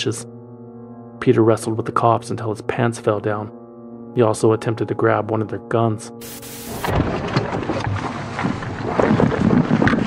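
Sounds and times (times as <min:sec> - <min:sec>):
held music chord: 0:00.0 - 0:06.9
burst of static: 0:06.2 - 0:07.0
wind buffeting microphone: 0:06.9 - 0:10.0.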